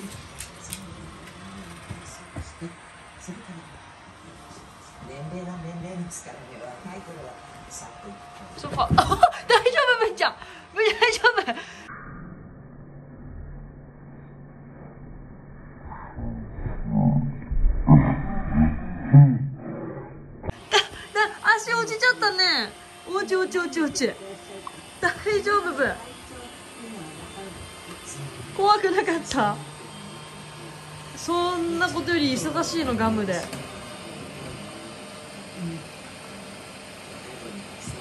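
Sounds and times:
low background hum: 0.0s - 20.0s
faint voices: 20.7s - 38.0s.

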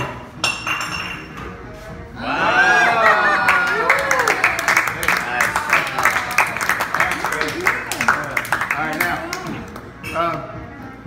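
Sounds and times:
glass clinking: 0.0s - 1.5s
bar background music: 0.0s - 11.0s.

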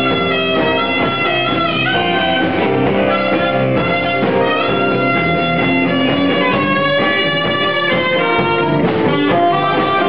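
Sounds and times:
guitar: 0.0s - 10.0s
saxophone held notes: 0.0s - 10.0s.

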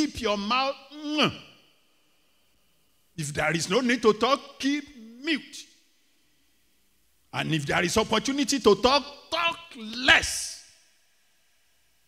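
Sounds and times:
man speaking: 0.0s - 1.6s, 3.2s - 5.8s, 7.3s - 10.8s.

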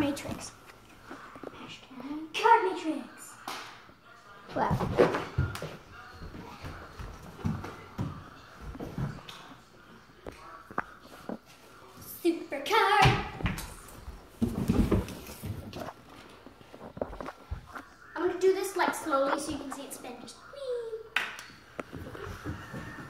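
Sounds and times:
knocks and shuffling on wooden floor: 13.1s - 17.8s.

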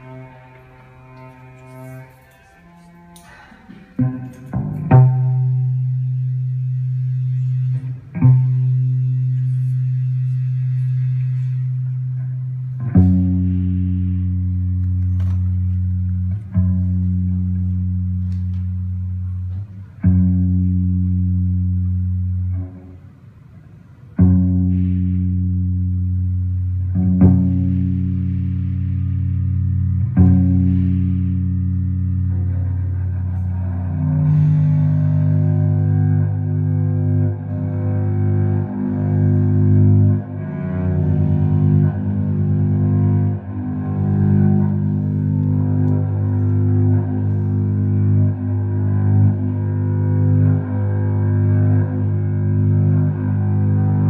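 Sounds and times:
amplified string instrument drone: 0.0s - 54.0s.

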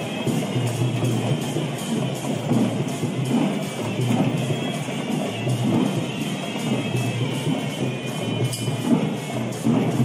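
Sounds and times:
drums and percussion: 0.0s - 10.0s.

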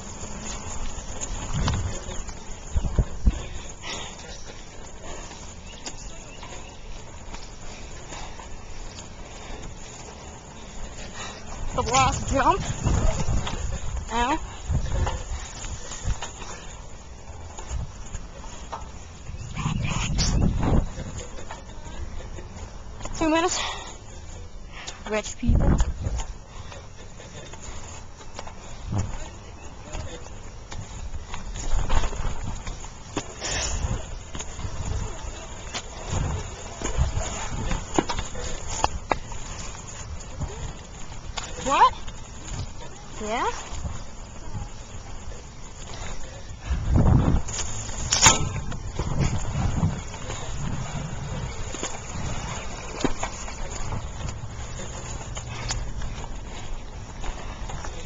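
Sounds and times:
wind buffeting microphone: 0.0s - 23.1s, 25.4s - 27.8s, 28.6s - 58.0s
bicycle riding rumble: 0.0s - 58.0s.

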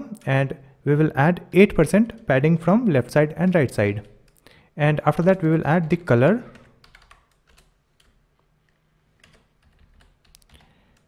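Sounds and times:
typing on computer keyboard: 5.8s - 8.2s, 9.2s - 11.0s.

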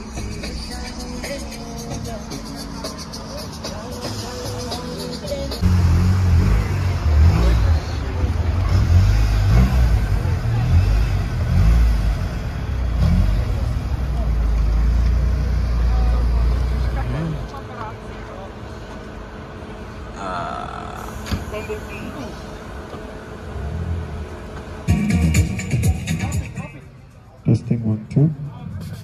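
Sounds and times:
car engine rumbling: 0.0s - 29.0s.

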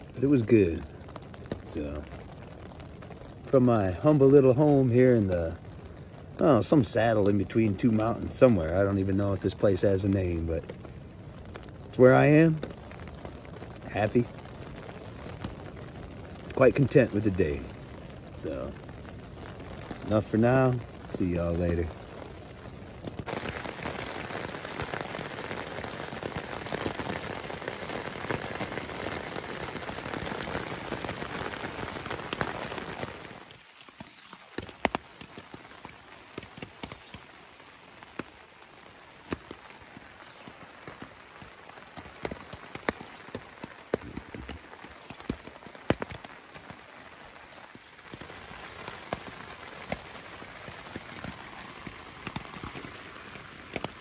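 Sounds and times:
rain on a tent: 0.0s - 54.0s.

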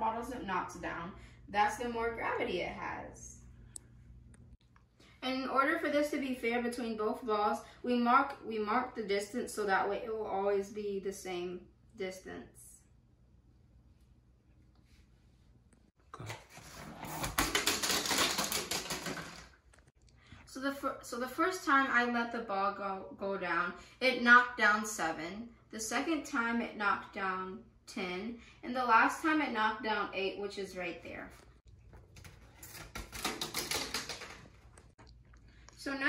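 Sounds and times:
plastic bottles clattering on floor: 17.0s - 19.8s, 32.9s - 34.9s.

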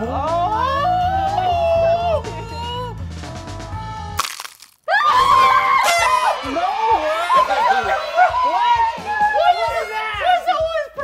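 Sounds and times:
people screaming and yelling: 4.9s - 11.0s
drum-backed background music: 5.9s - 11.0s.

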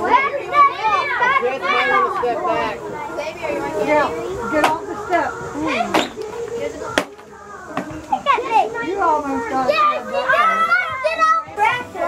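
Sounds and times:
children calling and chattering: 0.0s - 12.0s.

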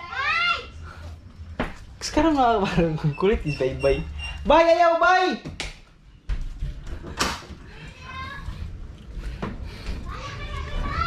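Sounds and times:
high-pitched voices talking: 9.9s - 11.0s.

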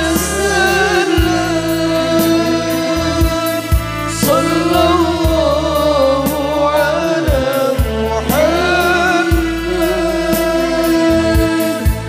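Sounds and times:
singers singing together over band: 0.0s - 12.0s.

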